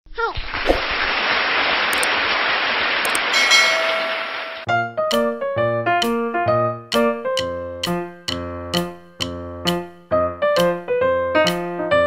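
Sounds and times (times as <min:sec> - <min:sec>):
ringing chime-like tone: 0:03.1 - 0:04.7.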